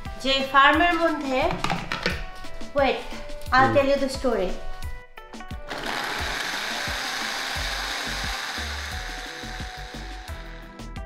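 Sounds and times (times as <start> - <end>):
blender grinding ginger: 5.7 - 10.9.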